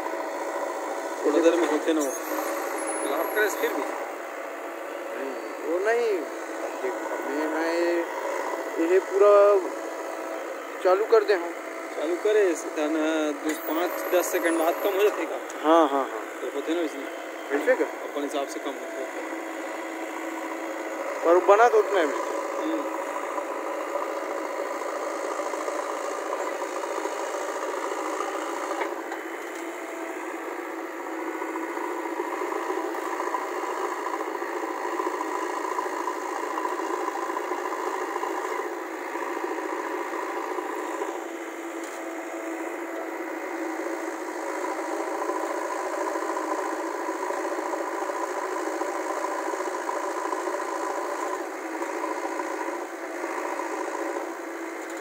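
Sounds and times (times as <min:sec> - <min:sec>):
diesel engine running: 0:00.0 - 0:55.0
hydraulic arm digging soil: 0:11.9 - 0:15.6.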